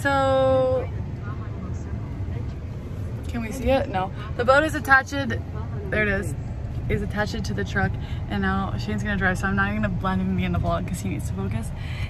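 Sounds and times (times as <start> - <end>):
truck engine rumble inside cab: 0.0 - 12.0.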